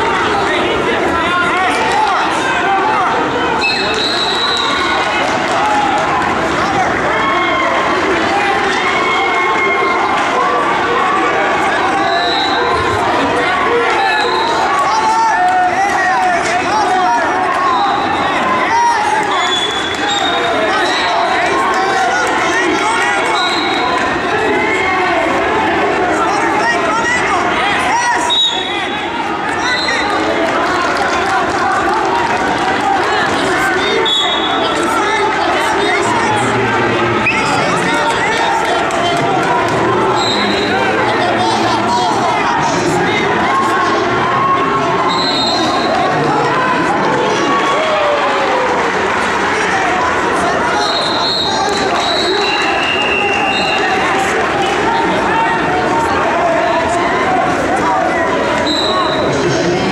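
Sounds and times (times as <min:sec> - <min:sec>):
crowd shouting and talking: 0:00.0 - 0:59.9.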